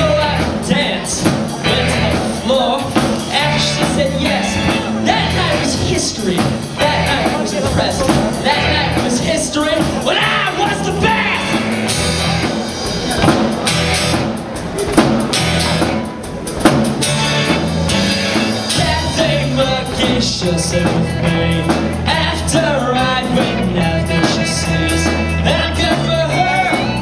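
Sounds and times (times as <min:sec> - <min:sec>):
person singing: 0:00.0 - 0:13.2, 0:18.6 - 0:27.0
bass guitar: 0:00.0 - 0:27.0
drum kit: 0:00.0 - 0:27.0
electric guitars: 0:00.0 - 0:27.0.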